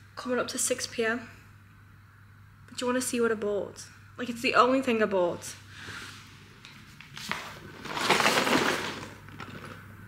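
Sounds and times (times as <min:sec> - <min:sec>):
cardboard box rustling and scraping: 0:07.2 - 0:09.6.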